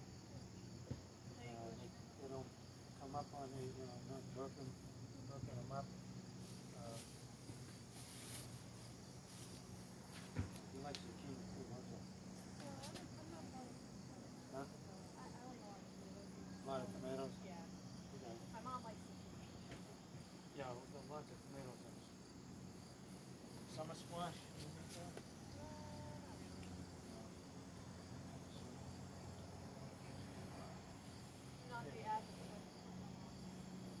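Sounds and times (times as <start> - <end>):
crickets chirping: 0.0 - 34.0
high-pitched insect chorus: 0.0 - 34.0.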